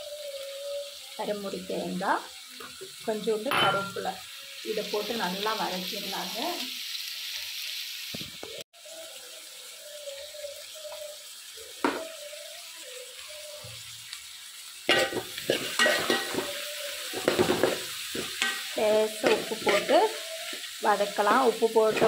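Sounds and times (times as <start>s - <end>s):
food sizzling in oil: 0.0s - 22.0s
spatula scraping a pan: 14.9s - 22.0s.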